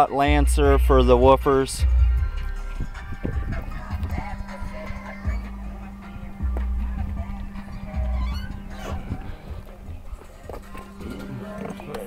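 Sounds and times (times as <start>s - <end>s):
deep bass notes: 0.0s - 12.0s
hip-hop music with heavy bass: 0.0s - 12.0s.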